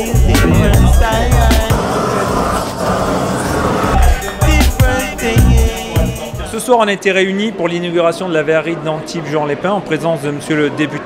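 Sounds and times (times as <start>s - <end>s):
gas burner roaring: 0.1s - 6.4s.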